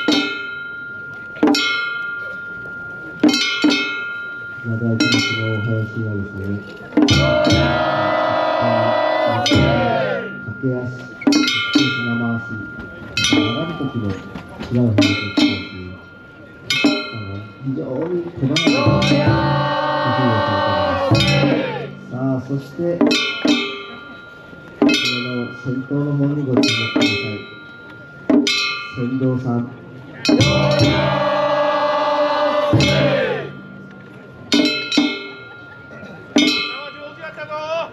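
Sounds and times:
ringing metallic strikes: 0:00.0 - 0:37.3
low drum tones: 0:07.0 - 0:10.6, 0:18.0 - 0:23.2, 0:30.3 - 0:35.2
voices chanting: 0:07.1 - 0:10.4, 0:18.6 - 0:22.0, 0:30.3 - 0:33.8.

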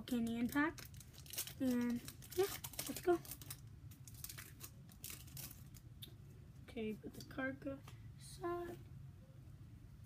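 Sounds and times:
foil wrapper tearing and crinkling: 0:00.4 - 0:05.9.

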